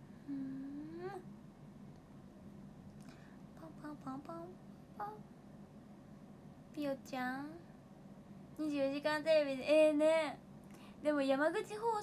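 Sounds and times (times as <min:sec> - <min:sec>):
woman humming mm-hmm: 0:00.2 - 0:01.3, 0:03.6 - 0:05.2.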